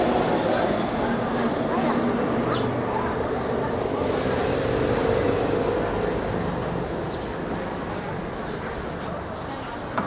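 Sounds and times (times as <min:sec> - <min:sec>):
street background noise: 0:00.0 - 0:10.0.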